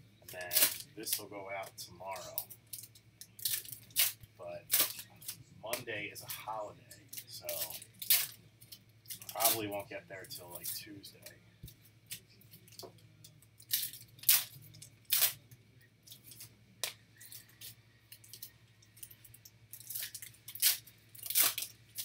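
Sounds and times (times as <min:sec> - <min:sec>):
low steady hum: 0:00.0 - 0:22.0
foil card packs tearing: 0:00.3 - 0:01.3, 0:03.4 - 0:05.9, 0:07.2 - 0:08.4, 0:09.1 - 0:09.8, 0:13.6 - 0:15.4, 0:19.8 - 0:22.0
crinkling of foil: 0:00.3 - 0:05.4, 0:06.9 - 0:11.3, 0:12.1 - 0:16.6, 0:17.2 - 0:22.0.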